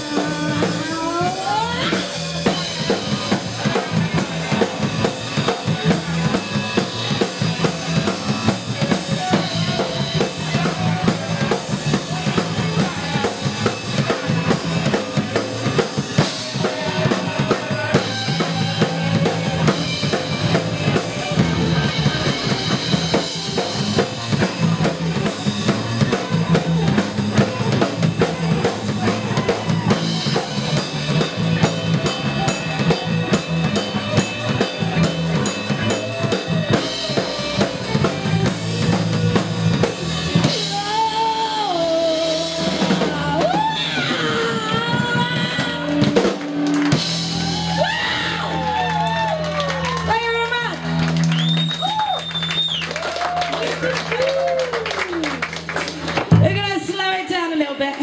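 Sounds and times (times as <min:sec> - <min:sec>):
bass guitar: 0:00.0 - 0:58.0
drum kit: 0:00.0 - 0:58.0
electric guitar: 0:00.0 - 0:58.0.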